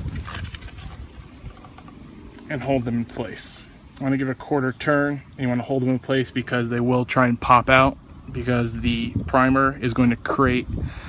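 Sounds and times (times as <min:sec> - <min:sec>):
plastic scraping on plastic: 0:00.0 - 0:02.0.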